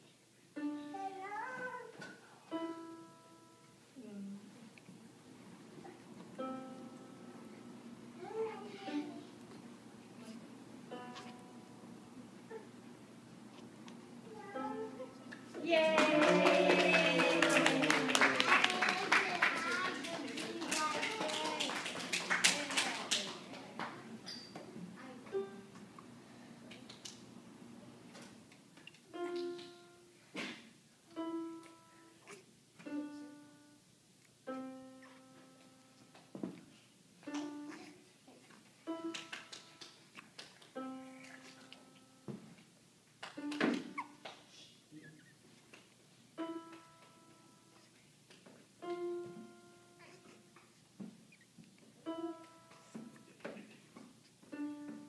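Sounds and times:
electronic keyboard notes: 6.3 - 7.5, 10.9 - 11.9.

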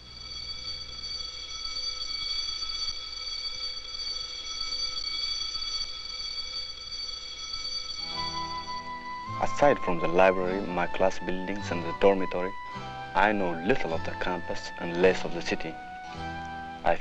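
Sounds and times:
high-pitched held chord: 8.0 - 17.0.

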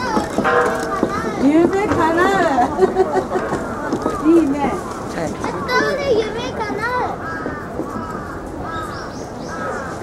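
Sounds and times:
crowd of people talking: 0.0 - 10.0.

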